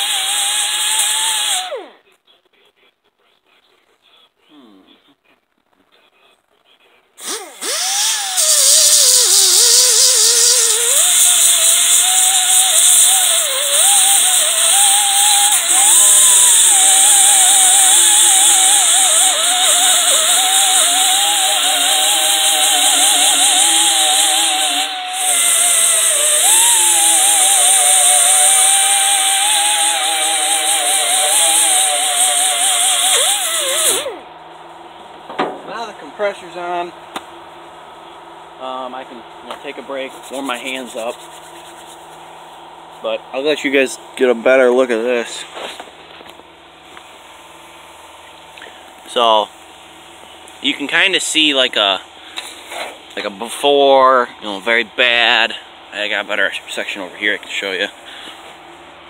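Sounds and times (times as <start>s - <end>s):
die grinder grinding rusty metal: 0.0s - 2.0s, 7.2s - 34.2s, 39.6s - 42.2s.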